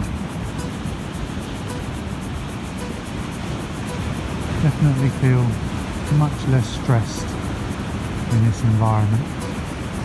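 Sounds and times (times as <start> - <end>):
faint background music: 0.0 - 10.0
sea waves on shore: 0.0 - 10.0.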